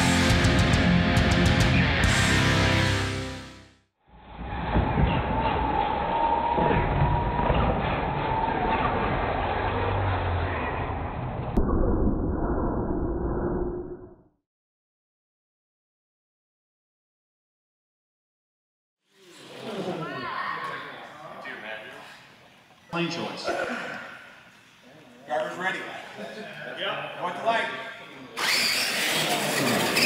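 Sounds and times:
heavy rock guitar stinger: 0.0 - 3.5.

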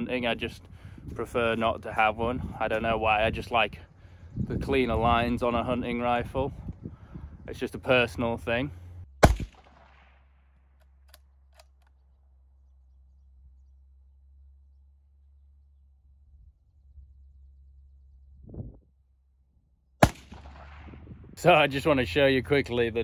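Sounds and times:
rifle shot with echo: 9.2 - 10.3, 20.0 - 21.2.

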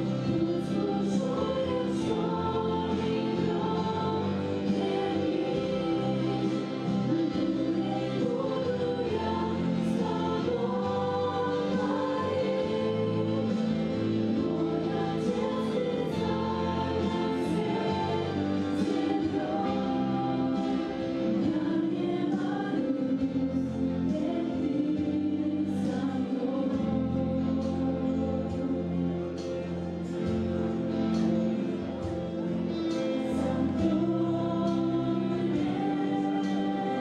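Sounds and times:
women singing in harmony: 0.0 - 37.0.

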